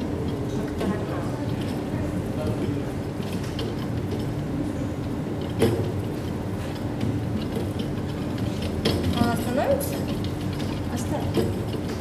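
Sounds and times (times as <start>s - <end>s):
pendulum mechanical running noise: 0.0s - 12.0s.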